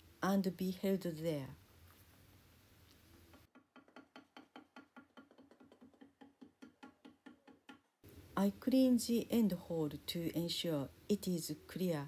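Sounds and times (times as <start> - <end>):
wooden paddle tapping clay: 3.3 - 8.0.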